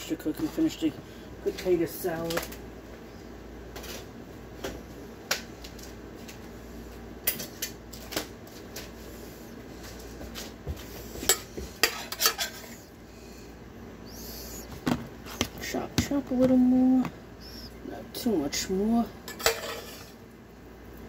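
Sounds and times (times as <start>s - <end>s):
pots and pans clinking: 11.2s - 12.8s, 19.2s - 20.2s.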